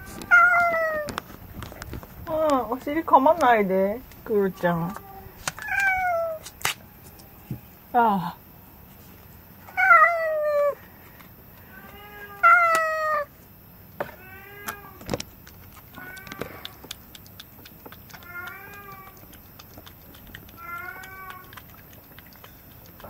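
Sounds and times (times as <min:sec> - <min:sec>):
cat meowing: 0:00.0 - 0:01.1, 0:04.4 - 0:06.4, 0:15.9 - 0:16.8, 0:18.2 - 0:19.3, 0:20.5 - 0:21.6.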